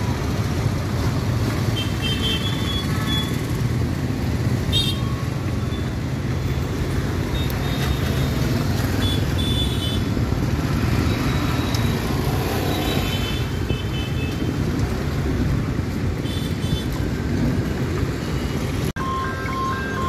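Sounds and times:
scooters and motorcycles passing: 0.0s - 20.0s.

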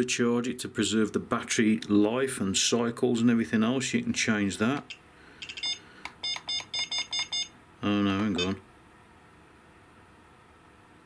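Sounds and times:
short high electronic beeps: 5.4s - 7.5s.

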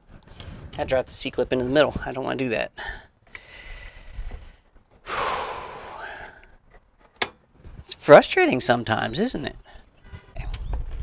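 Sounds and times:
man sighing: 5.0s - 6.6s.

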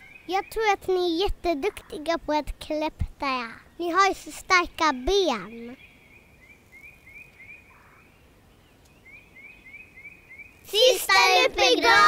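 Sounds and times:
faint bird chirping: 0.0s - 2.2s, 3.4s - 10.8s
children's voices: 10.6s - 12.0s.

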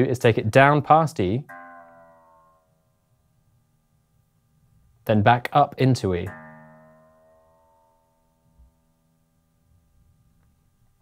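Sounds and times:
electric guitar string ringing: 1.4s - 3.6s, 6.2s - 10.5s.

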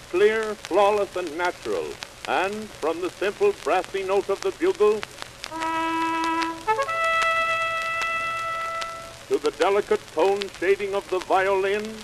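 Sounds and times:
record crackle: 0.0s - 12.0s
bugle playing: 5.5s - 9.3s.

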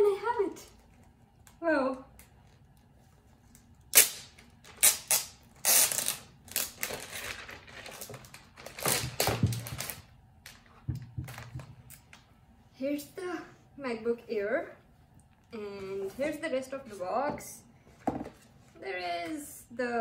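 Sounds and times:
plastic film peeling crackles: 3.4s - 10.6s.

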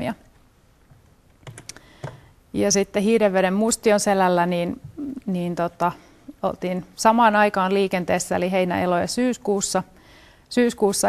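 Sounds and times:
laptop keys clicking: 1.4s - 2.2s.

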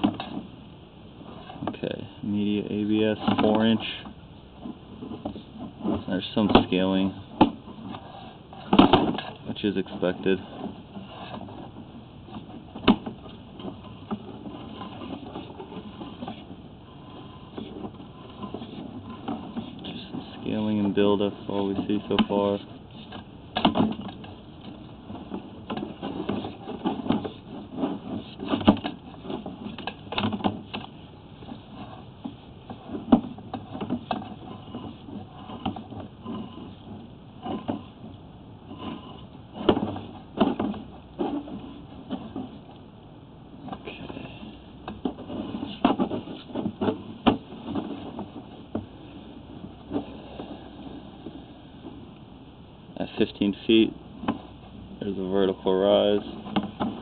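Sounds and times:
low steady background noise: 0.0s - 57.0s.

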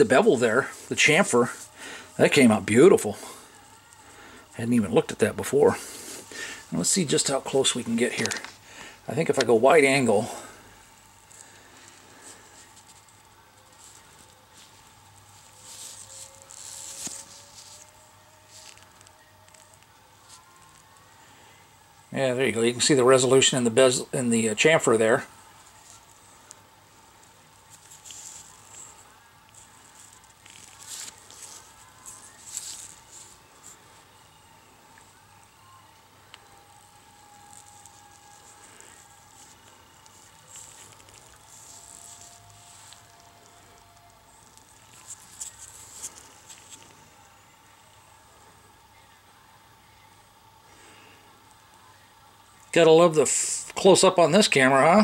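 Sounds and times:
faint steady tones: 0.0s - 55.0s
gloved fingers rustling plastic: 5.0s - 21.2s, 23.1s - 34.1s, 36.3s - 47.3s.

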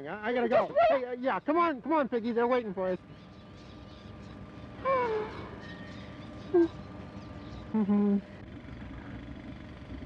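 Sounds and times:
person murmuring mm-hmm: 6.5s - 6.8s, 7.7s - 8.3s.

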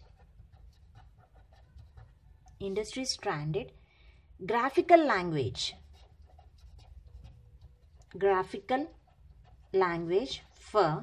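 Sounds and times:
marker scratching on paper: 0.0s - 3.6s, 4.6s - 11.0s.

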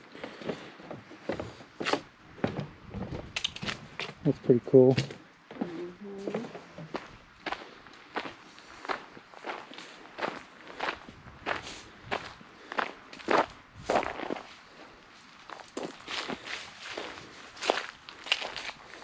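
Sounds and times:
footsteps on gravel and leaves: 6.4s - 19.0s.

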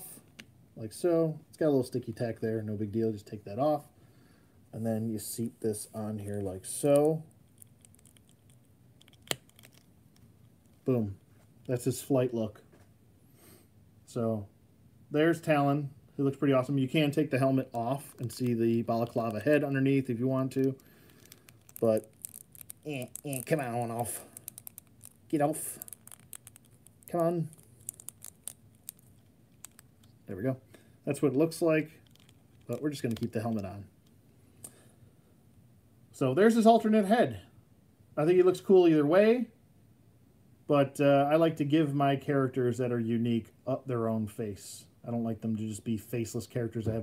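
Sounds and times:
plastic handling ticks: 6.3s - 10.9s, 18.0s - 30.2s, 32.0s - 34.8s
plastic clicks and scrapes: 7.0s - 10.9s, 20.6s - 30.2s, 32.0s - 33.7s.

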